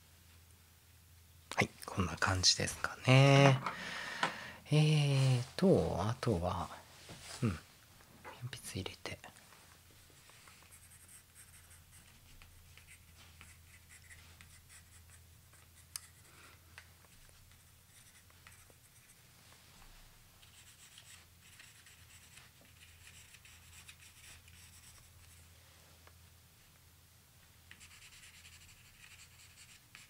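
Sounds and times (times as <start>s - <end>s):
pencil scratching on paper: 10.5s - 16.3s, 17.5s - 19.2s, 20.4s - 25.4s, 27.7s - 30.0s.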